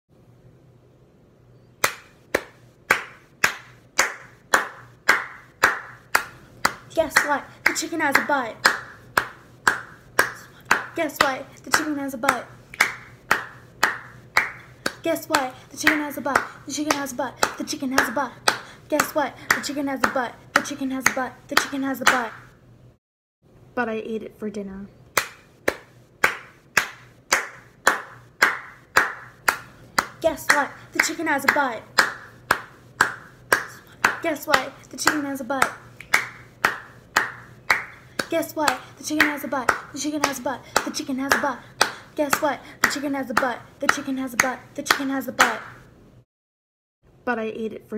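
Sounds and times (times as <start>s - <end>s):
hand claps: 1.8s - 22.4s, 25.2s - 45.8s.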